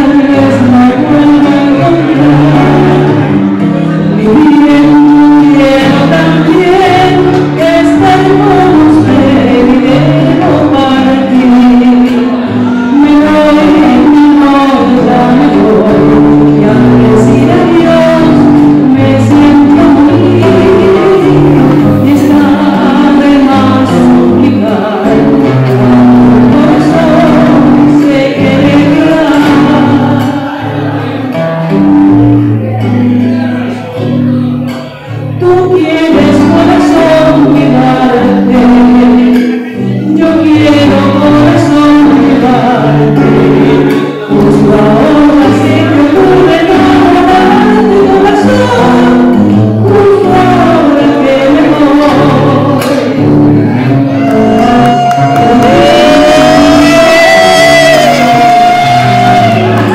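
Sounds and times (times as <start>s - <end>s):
acoustic guitar chords: 0.0s - 59.9s
lower voice singing: 0.0s - 59.9s
woman singing: 0.0s - 59.9s.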